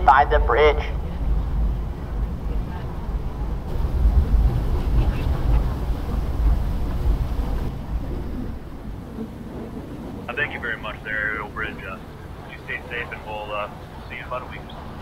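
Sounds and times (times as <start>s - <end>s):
ship low rumble: 0.0s - 15.0s
wind buffeting microphone: 0.0s - 15.0s.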